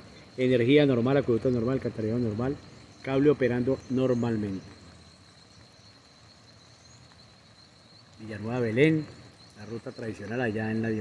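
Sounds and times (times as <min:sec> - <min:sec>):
low even hiss: 0:00.0 - 0:11.0.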